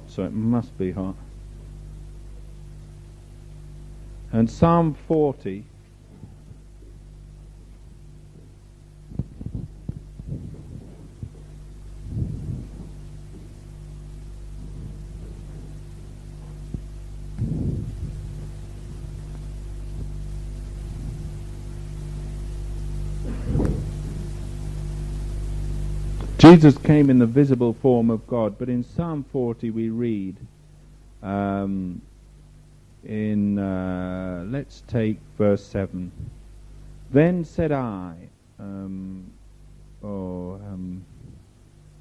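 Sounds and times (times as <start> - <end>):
tape hum: 0.0 - 30.6
dull low thumps: 5.7 - 29.0.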